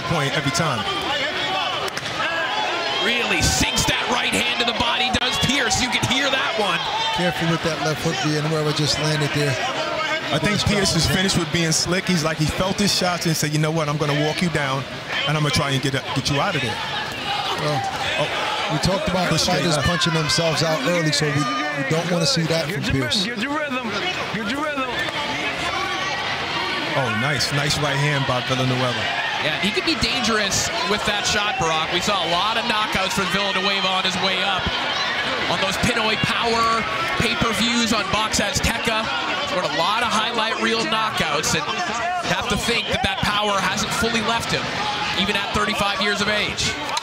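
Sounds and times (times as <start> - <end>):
crowd hum: 0.0 - 47.0
men shouting and talking: 0.0 - 47.0
commentator speaking: 3.0 - 16.8, 17.6 - 25.0, 27.0 - 34.8, 35.5 - 46.8.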